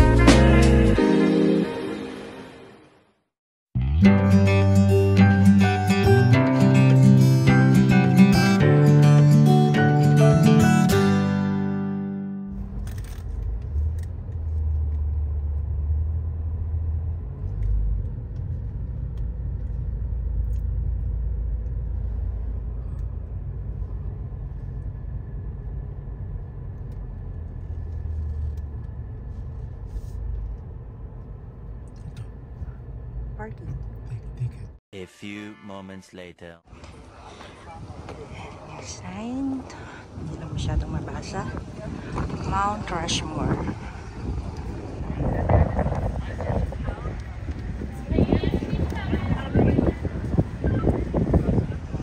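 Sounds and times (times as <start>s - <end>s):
acoustic guitar music: 3.8s - 12.7s
car rolling rumble from inside: 12.5s - 34.8s, 36.8s - 52.0s.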